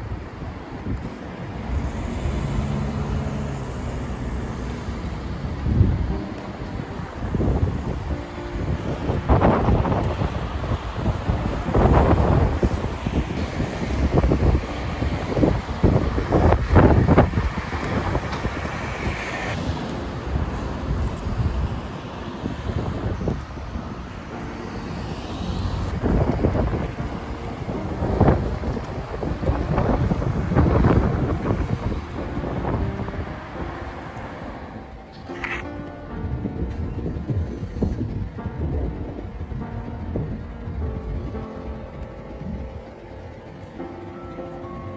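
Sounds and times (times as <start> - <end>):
cars passing: 0.0 - 44.9
wind buffeting microphone: 0.0 - 44.9.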